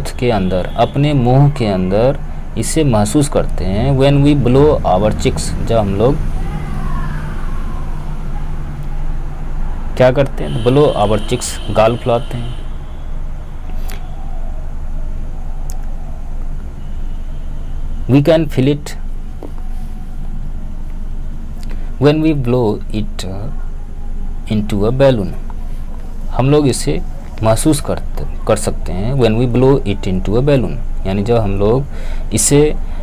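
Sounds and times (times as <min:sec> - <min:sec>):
vehicle engine hum: 0:00.0 - 0:33.0.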